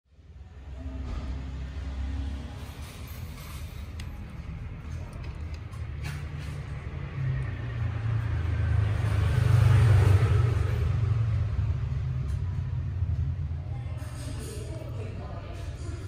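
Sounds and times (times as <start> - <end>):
passing vehicle rumble: 0.2 - 16.0.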